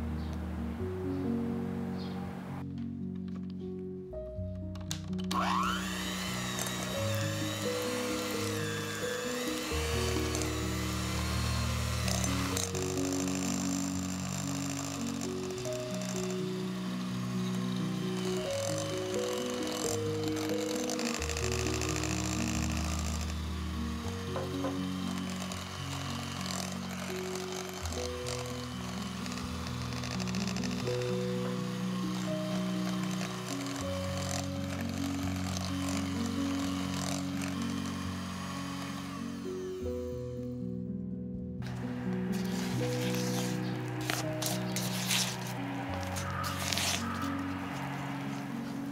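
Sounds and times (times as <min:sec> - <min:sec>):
background music: 0:00.0 - 0:48.9
electric hand mixer whining: 0:04.8 - 0:40.6, 0:41.6 - 0:48.9.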